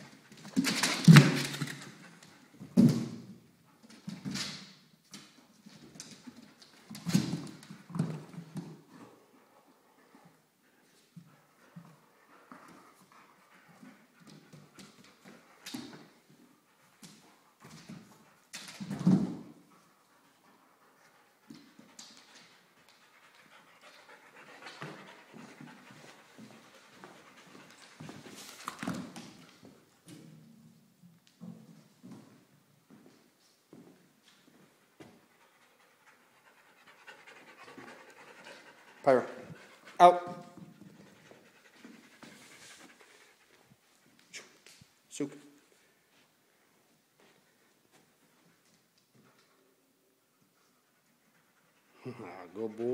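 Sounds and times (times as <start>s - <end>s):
dog panting: 8.8s - 15.6s, 19.7s - 28.6s, 34.9s - 44.2s.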